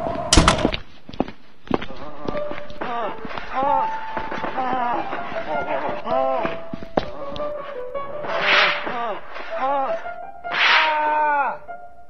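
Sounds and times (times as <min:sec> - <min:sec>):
wailing voices: 0:01.8 - 0:07.4, 0:10.8 - 0:11.7.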